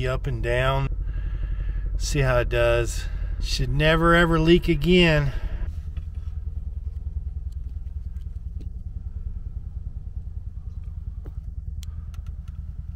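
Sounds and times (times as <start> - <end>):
car engine idling: 0.0 - 12.9
faint clicks: 10.7 - 12.6.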